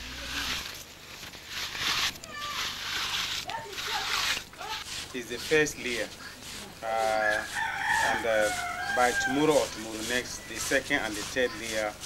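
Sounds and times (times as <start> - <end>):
stick scraping damp earth: 0.0 - 12.0.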